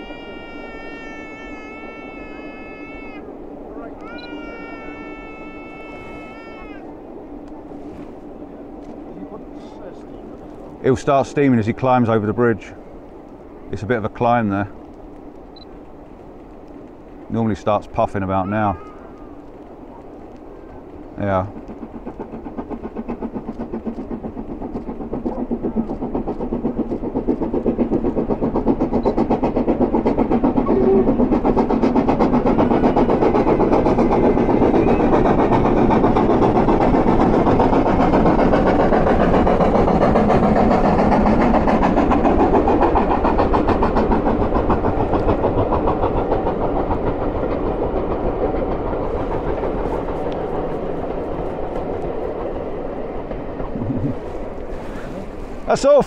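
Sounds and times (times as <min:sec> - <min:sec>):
steam locomotive exhaust beating: 0:00.0 - 0:56.0
train rumble: 0:00.0 - 0:56.0.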